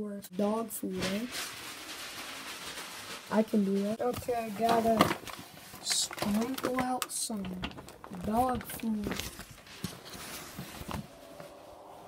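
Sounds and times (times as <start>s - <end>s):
dry dog food rustling patter: 0.9s - 10.8s.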